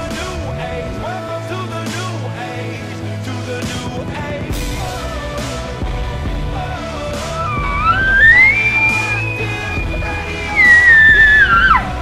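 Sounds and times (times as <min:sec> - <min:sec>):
rock music: 0:00.0 - 0:12.0
elk bugle call: 0:07.4 - 0:12.0.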